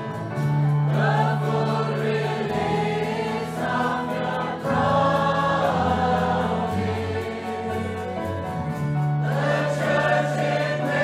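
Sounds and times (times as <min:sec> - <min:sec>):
choir singing: 0:00.0 - 0:11.0
guitar: 0:00.0 - 0:11.0.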